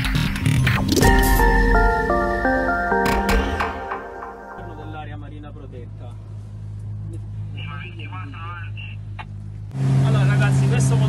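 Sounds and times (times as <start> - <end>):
man's voice: 4.6 - 5.0.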